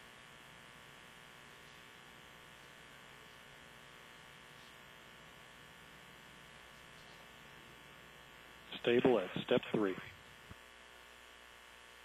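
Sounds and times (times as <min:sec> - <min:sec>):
audio feed hiss and hum: 0:00.0 - 0:12.0.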